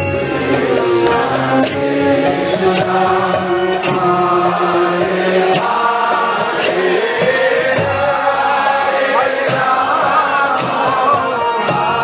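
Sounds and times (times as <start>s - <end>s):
chanting to music: 0.0s - 12.0s.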